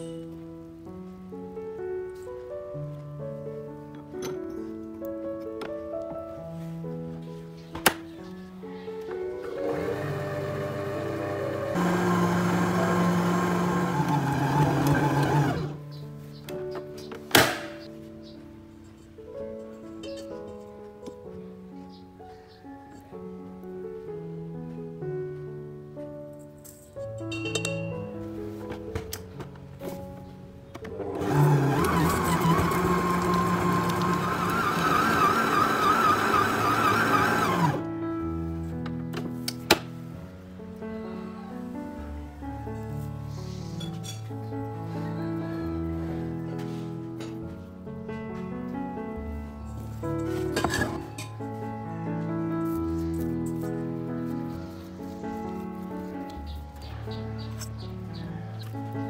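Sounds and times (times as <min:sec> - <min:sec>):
background music: 0:00.0 - 0:59.0
stand mixer motor kneading dough: 0:09.5 - 0:15.8, 0:31.0 - 0:37.8
sharp knock: 0:17.3 - 0:17.8.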